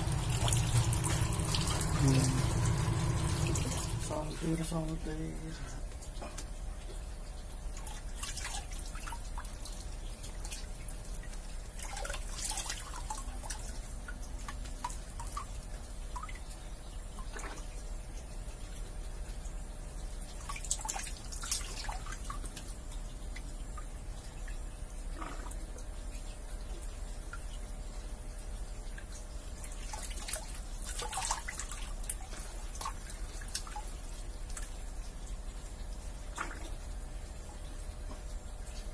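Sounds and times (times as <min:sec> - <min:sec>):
steady low hum: 0:00.0 - 0:38.9
water dripping and splashing: 0:00.0 - 0:38.9.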